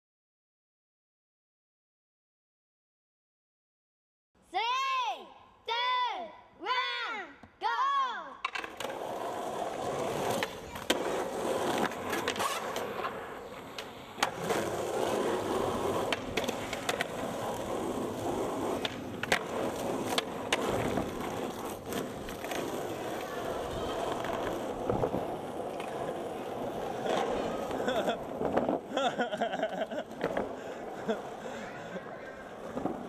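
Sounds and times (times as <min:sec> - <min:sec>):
skateboard clacking on landing: 0:08.4 - 0:28.9
skateboard wheels rolling on asphalt: 0:08.4 - 0:33.0.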